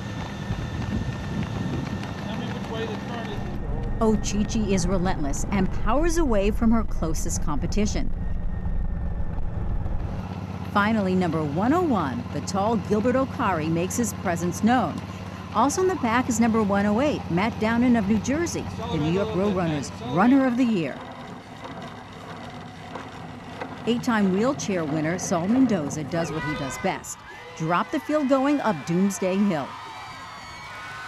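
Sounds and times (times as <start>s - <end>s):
wind and road noise: 0.0s - 27.2s
vehicle engine rumbling: 0.0s - 27.8s.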